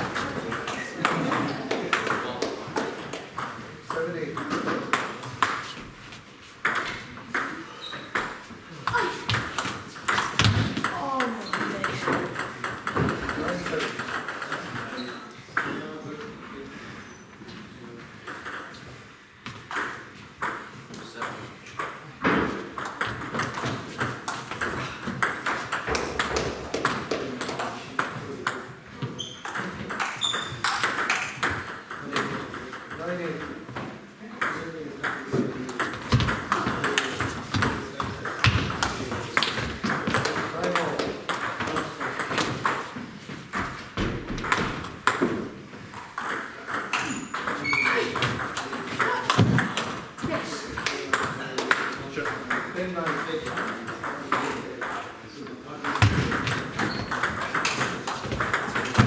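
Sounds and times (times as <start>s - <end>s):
table tennis balls clicking: 0.0s - 5.7s, 6.6s - 15.8s, 18.2s - 18.9s, 19.6s - 33.7s, 34.4s - 55.0s, 55.8s - 59.0s.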